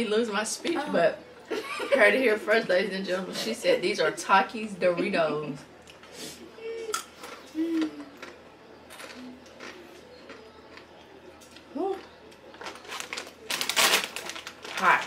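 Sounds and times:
crunching tortilla chips: 7.2 - 10.9, 11.6 - 15.0
foil bag crinkling: 12.5 - 15.0.

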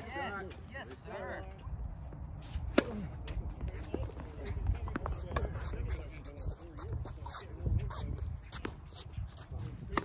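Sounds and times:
racket hitting ball: 2.7 - 3.4.

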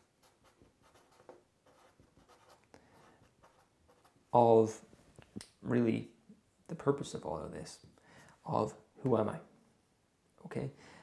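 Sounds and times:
marker scratching on paper: 0.0 - 4.2.

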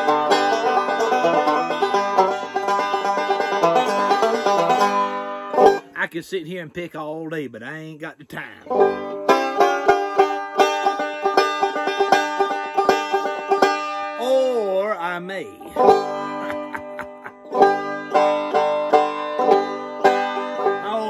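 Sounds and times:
wavering sliding banjo tone: 0.0 - 6.0, 8.6 - 21.0
banjo fingerpicking: 0.0 - 6.1, 8.6 - 21.0.

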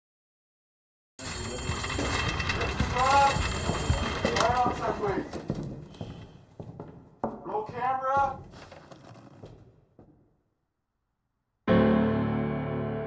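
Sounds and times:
person speaking: 1.2 - 5.5, 7.3 - 8.5.

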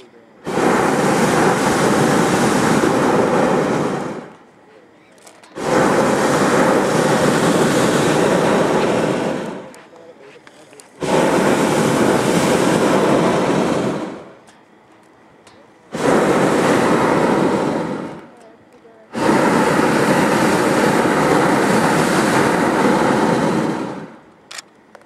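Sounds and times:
propane burner blasts: 0.0 - 25.0.

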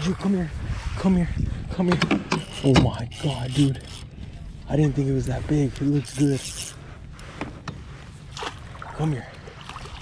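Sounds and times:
fish thrashing and splashing water: 8.4 - 10.0.

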